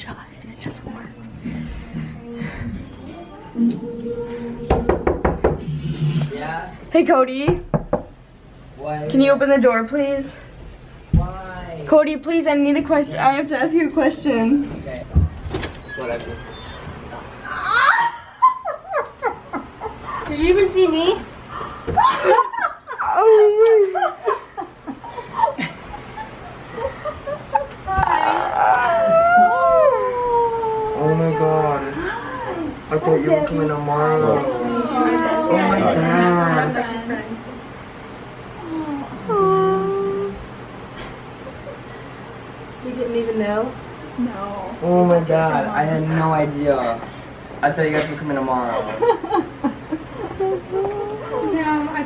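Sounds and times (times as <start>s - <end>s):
knuckles knocking on door: 4.7s - 5.7s, 7.5s - 8.1s
person squealing with excitement: 17.5s - 18.2s, 28.3s - 31.3s
lower voice: 38.6s - 40.5s
person calling out: 38.7s - 40.4s.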